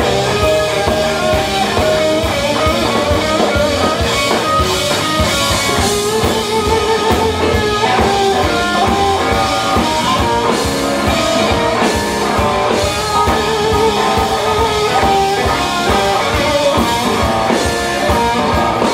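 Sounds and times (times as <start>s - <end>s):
blues band playing: 0.0s - 18.9s
electric guitar lead bending notes: 0.0s - 18.9s.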